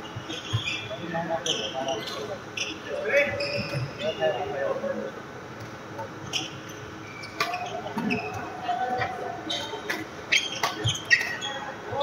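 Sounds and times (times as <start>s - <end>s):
shoes squeaking on wooden court: 0.1s - 4.0s, 6.2s - 8.6s, 9.5s - 12.0s.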